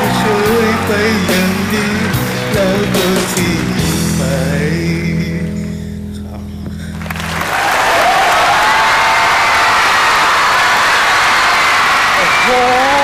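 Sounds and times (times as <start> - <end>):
studio audience applauding: 0.0 - 4.0, 6.9 - 13.0
backing music: 0.0 - 7.5.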